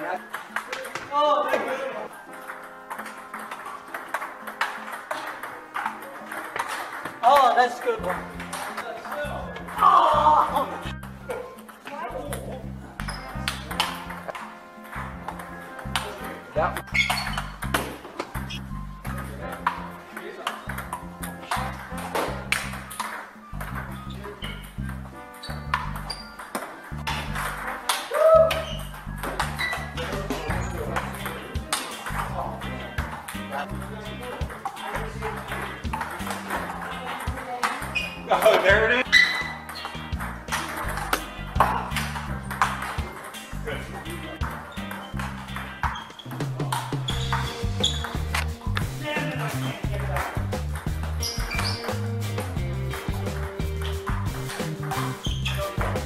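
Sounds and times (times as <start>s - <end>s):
table tennis balls clicking: 0.2s - 48.9s, 49.5s - 52.1s
background music with bass: 8.0s - 20.1s, 20.7s - 37.2s, 37.8s - 56.0s.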